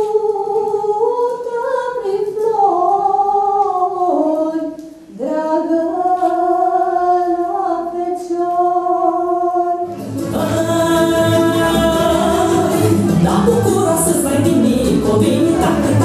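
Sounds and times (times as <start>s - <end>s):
women singing unaccompanied: 0.0s - 16.0s
folk dance music: 7.8s - 16.0s.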